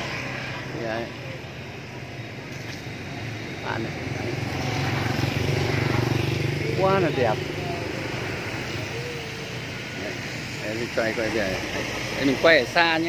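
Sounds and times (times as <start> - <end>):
street background noise: 0.0 - 13.0
vehicle engine humming: 0.0 - 13.0.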